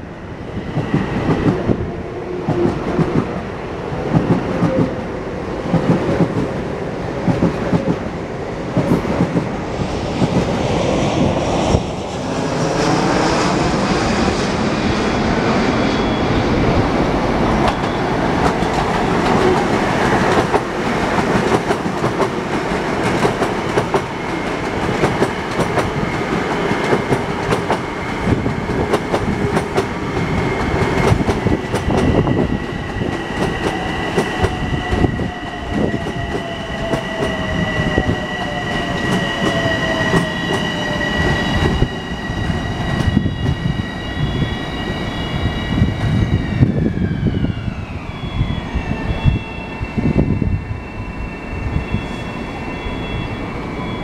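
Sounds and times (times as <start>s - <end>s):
high-pitched wheel squeal: 15.5s - 16.8s.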